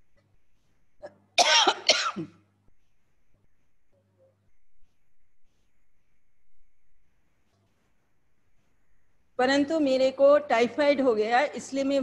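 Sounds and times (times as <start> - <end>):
woman coughing: 1.0 - 2.4.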